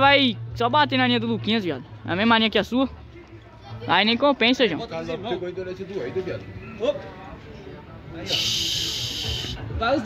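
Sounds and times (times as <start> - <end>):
faint voices: 2.9 - 10.0
high hiss: 8.3 - 9.7.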